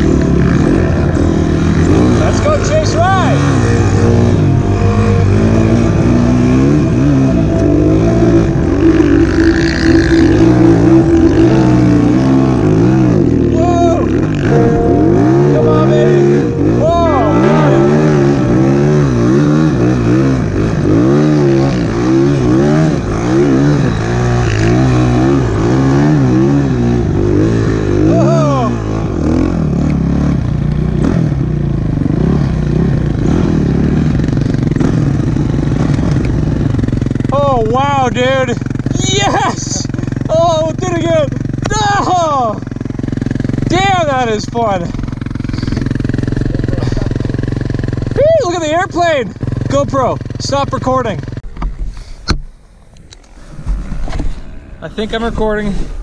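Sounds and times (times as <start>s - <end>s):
snowbike engine revving: 0.0s - 14.6s.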